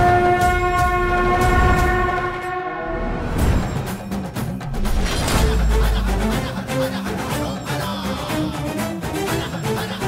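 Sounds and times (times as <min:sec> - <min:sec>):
conch shell blown: 0:00.0 - 0:03.2.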